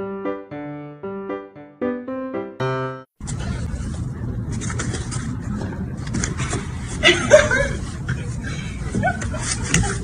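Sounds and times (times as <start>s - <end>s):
low outdoor rumble: 3.2s - 10.0s.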